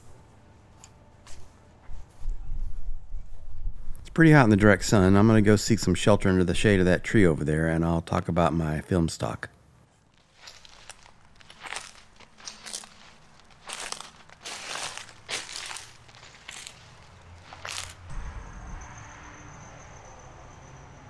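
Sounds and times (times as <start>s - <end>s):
footsteps through dry leaves: 10.0s - 18.2s
thin high whine: 18.1s - 21.0s.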